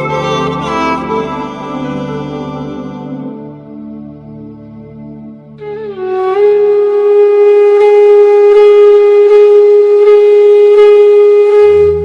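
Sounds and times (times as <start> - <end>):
nadaswaram long note: 0.0 - 4.4, 5.6 - 12.0.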